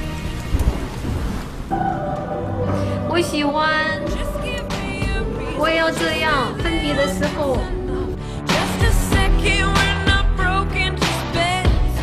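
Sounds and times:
music: 0.0s - 12.0s
waltz music: 1.7s - 8.5s.

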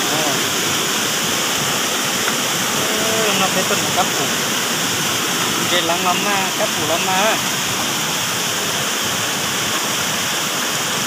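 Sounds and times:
stream water rushing over rock: 0.0s - 11.0s.

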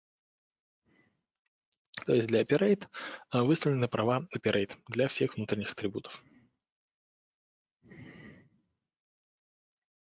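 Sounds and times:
breath like a sigh: 7.9s - 8.6s.

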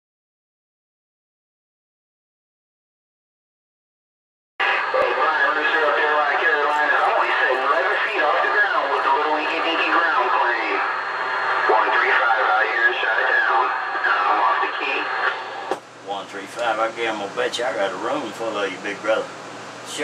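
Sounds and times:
garbled radio voices: 4.6s - 19.0s.

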